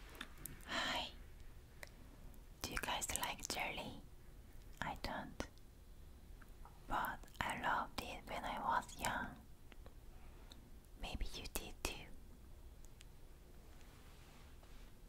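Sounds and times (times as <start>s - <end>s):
woman whispering: 0.6s - 1.2s, 2.6s - 4.0s, 4.8s - 5.5s, 6.9s - 9.4s, 11.0s - 12.2s.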